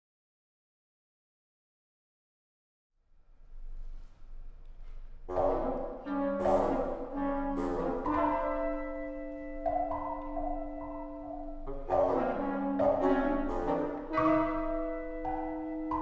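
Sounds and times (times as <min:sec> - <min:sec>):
wind ensemble chamber music: 0:05.3 - 0:16.0.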